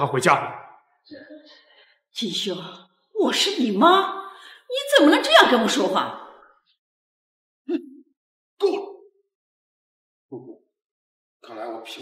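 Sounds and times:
man grunting: 8.6 - 8.9.

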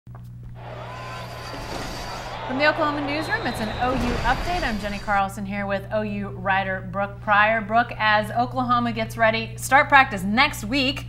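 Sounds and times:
whooshing swell: 0.6 - 5.3.

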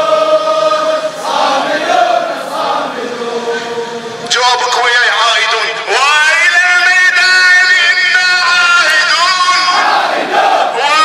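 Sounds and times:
crowd chanting in unison: 0.0 - 4.2, 7.8 - 11.0.

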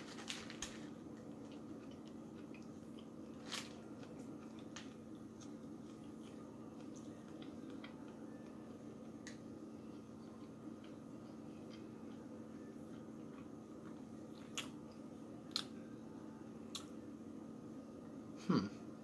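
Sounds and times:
steady low hum: 0.0 - 19.0
person chewing food: 1.1 - 15.7.

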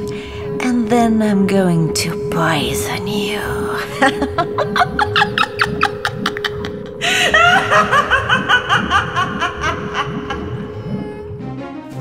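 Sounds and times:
background music steady note: 0.0 - 12.0
woman cackling: 4.0 - 10.5.

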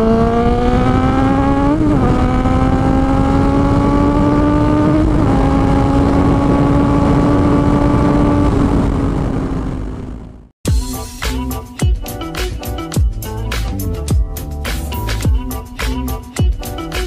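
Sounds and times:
wind rushing over microphone: 0.0 - 10.5.

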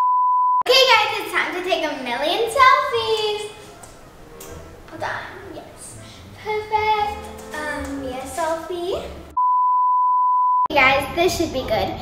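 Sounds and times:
girl singing: 5.0 - 9.4
test tone beep: 9.3 - 10.7.

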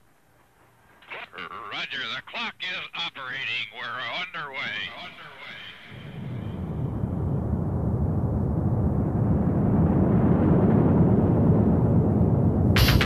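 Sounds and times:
rocket liftoff roar: 1.0 - 13.0
sharp electronic beat: 12.8 - 13.0.

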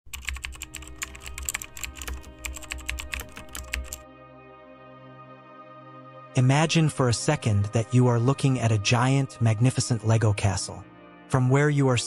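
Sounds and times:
keyboard typing clicks: 0.1 - 4.0.

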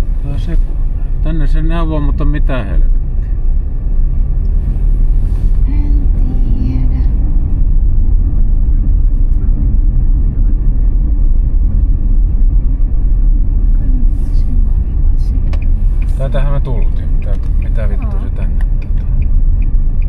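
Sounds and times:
car driving low rumble: 0.0 - 20.0.

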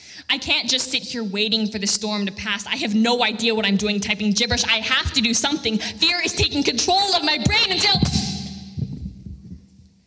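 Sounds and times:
soft low thumps: 7.5 - 10.0.

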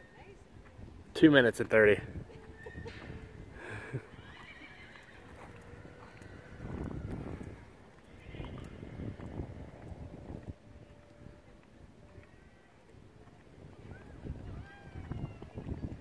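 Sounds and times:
horse whinnying: 2.5 - 9.3.

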